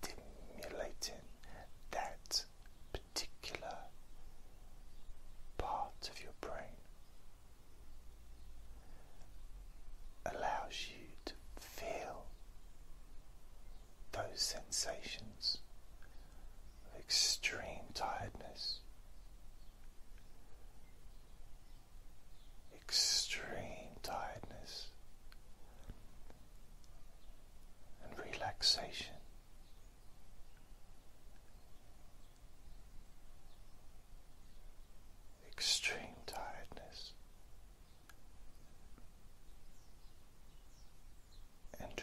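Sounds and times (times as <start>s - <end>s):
man whispering: 0.0s - 4.0s, 5.0s - 7.0s, 10.2s - 12.4s, 14.1s - 18.9s, 22.7s - 25.0s, 27.9s - 29.3s, 35.4s - 37.2s, 41.7s - 42.0s.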